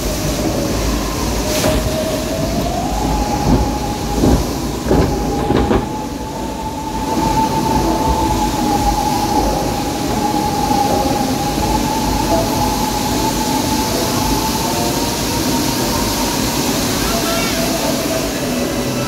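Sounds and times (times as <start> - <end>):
ride machinery rumbling: 0.0 - 19.0.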